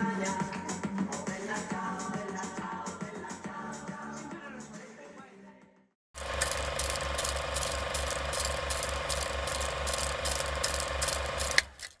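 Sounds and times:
rapid mechanical clicking rattle: 0:06.2 - 0:12.0.

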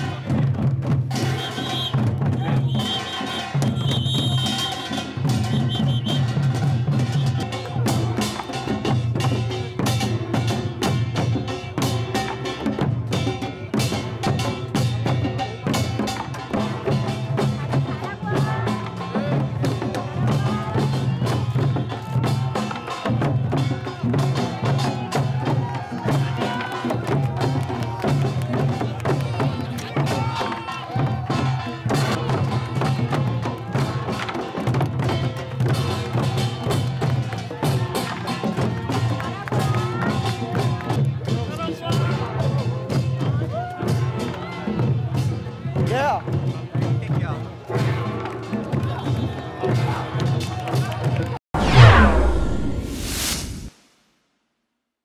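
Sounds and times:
crowd cheering and calling out: 0:16.6 - 0:35.3, 0:36.0 - 0:44.8, 0:48.1 - 0:52.8.

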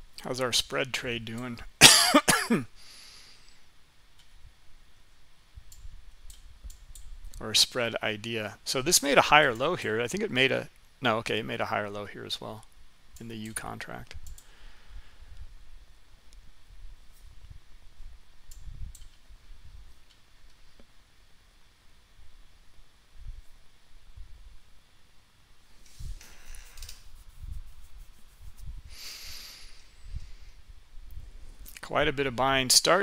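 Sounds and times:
breaths at a microphone: 0:02.8 - 0:03.7, 0:14.4 - 0:15.6, 0:28.8 - 0:31.6
computer mouse clicks: 0:05.7 - 0:07.1, 0:14.1 - 0:14.5, 0:18.5 - 0:19.2.

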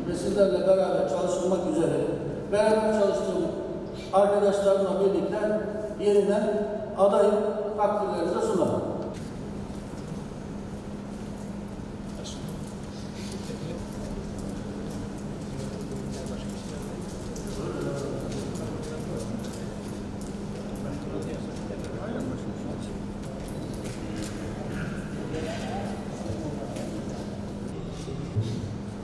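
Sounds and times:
steady low hum: 0:00.0 - 0:29.0
murmur of voices: 0:15.5 - 0:29.0.

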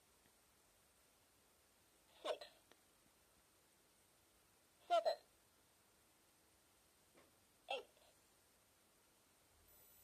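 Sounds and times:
toy recorded voice speaking: 0:04.8 - 0:05.3, 0:07.7 - 0:08.0.

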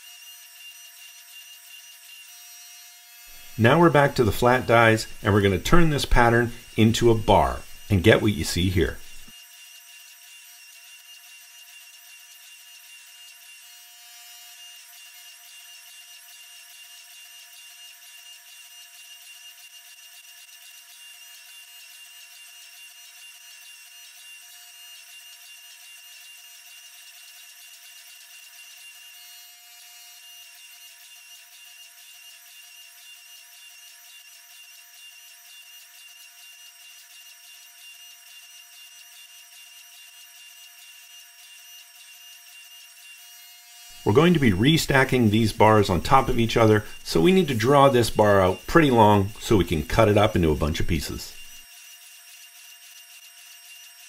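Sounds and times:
faint steady machine whine: 0:00.0 - 0:54.0.

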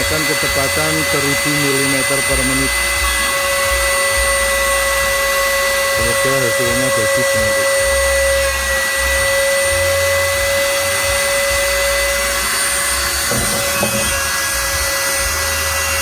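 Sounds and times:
router high-pitched whine: 0:00.0 - 0:16.0.

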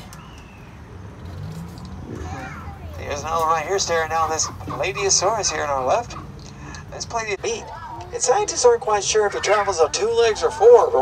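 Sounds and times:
tram low rumble: 0:00.0 - 0:07.4.

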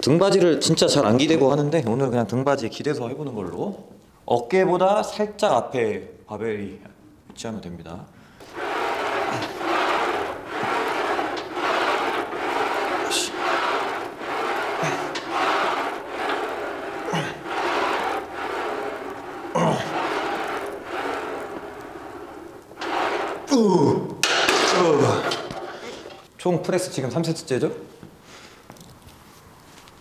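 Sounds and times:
man grunting: 0:23.5 - 0:24.2.

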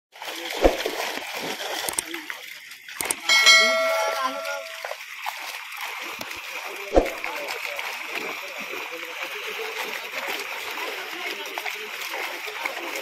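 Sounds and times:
fish splashing in water: 0:00.2 - 0:05.7, 0:06.8 - 0:13.0
sharp slaps on water: 0:00.5 - 0:01.2, 0:06.9 - 0:07.3
bell-like chime: 0:03.3 - 0:05.0.

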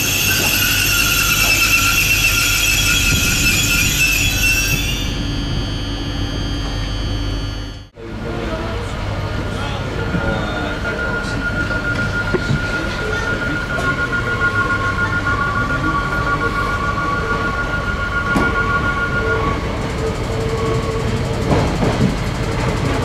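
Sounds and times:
high-pitched whining tones: 0:00.0 - 0:22.6
train running noise: 0:00.0 - 0:23.0
low hum: 0:00.4 - 0:21.1.

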